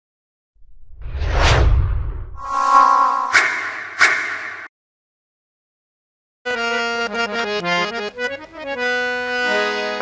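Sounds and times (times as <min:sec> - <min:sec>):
whoosh: 0:00.6 - 0:04.7.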